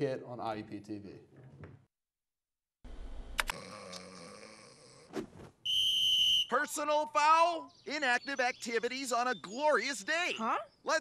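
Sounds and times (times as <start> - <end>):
sharp clicks: 3.4 - 3.6
referee's whistle blast: 5.7 - 6.7.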